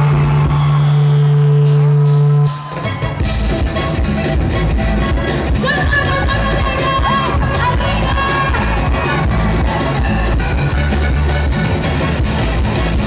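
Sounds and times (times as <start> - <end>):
drums: 0.0 - 13.0
live pop band over pa: 0.0 - 13.0.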